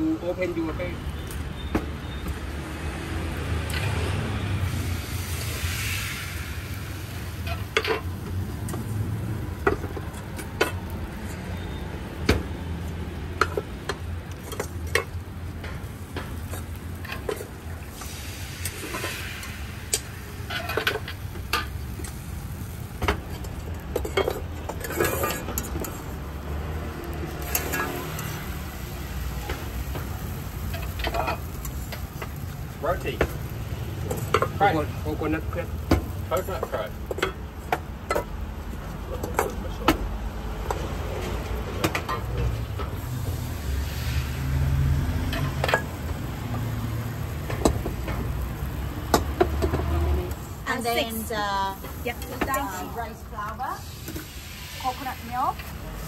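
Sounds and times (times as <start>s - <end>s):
metal utensils scraping steel woks: 13.4s - 33.2s.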